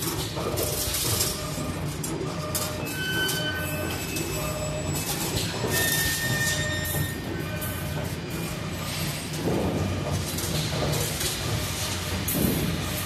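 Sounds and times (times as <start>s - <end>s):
wire bending machine humming: 0.0s - 13.0s.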